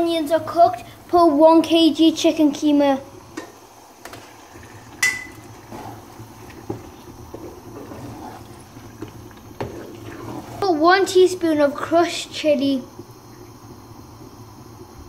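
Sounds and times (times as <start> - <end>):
wooden spoon scraping a pot: 4.5 - 11.6
spoon knocking on pot: 5.0 - 5.4.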